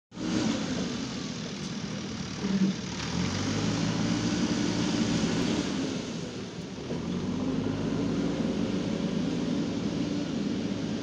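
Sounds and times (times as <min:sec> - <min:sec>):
diesel engine running: 0:00.1 - 0:11.0.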